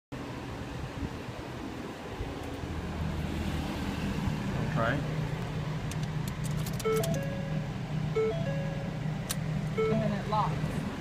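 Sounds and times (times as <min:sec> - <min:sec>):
car engine idling: 0:00.2 - 0:11.0.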